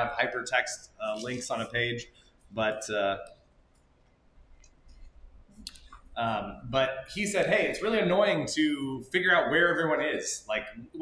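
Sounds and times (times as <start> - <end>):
faint clicks: 3.2 - 6.2.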